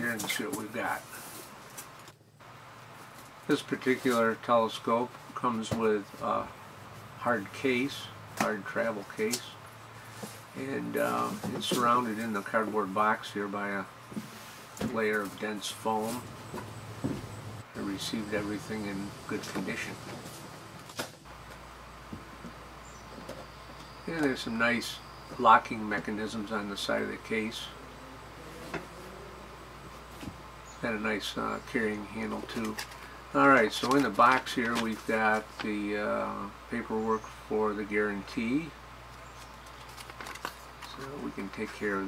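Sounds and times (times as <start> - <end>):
low steady hum: 0.0 - 42.0
cardboard rustling and scraping: 10.0 - 12.7, 14.1 - 17.4, 32.2 - 35.7, 39.3 - 41.2.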